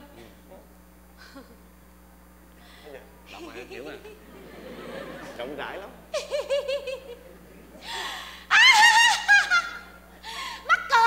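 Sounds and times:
woman laughing loudly: 6.1s - 7.2s, 7.8s - 10.7s.

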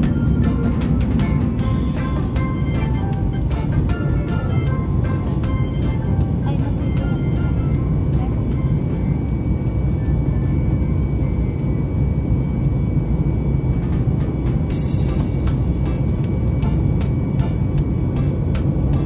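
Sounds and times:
airliner cabin rumble: 0.0s - 19.0s
background music: 0.0s - 19.0s.

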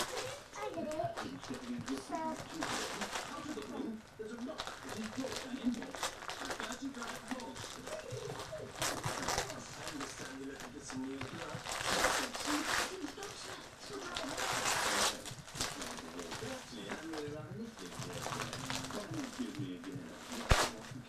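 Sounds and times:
quiet voices talking: 0.0s - 21.0s
wrapping paper crinkling: 0.0s - 21.0s.

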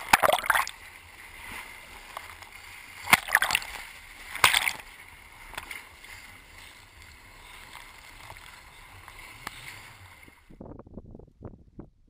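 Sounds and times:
whitewater splashing against raft: 0.0s - 10.4s.

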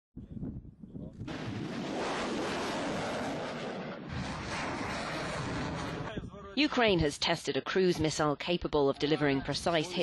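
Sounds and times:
low rumble: 0.2s - 6.6s
rocket motor roaring: 1.3s - 6.2s.

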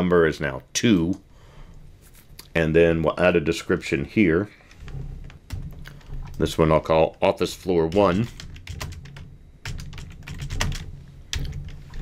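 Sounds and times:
computer keyboard typing: 7.9s - 12.0s.

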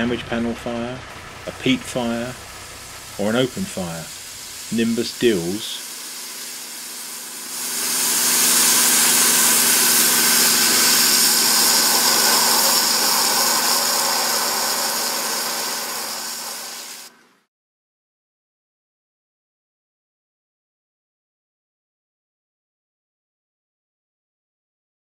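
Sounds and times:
water jet hissing on metal: 1.1s - 17.1s
pump engine hum: 1.1s - 17.2s.

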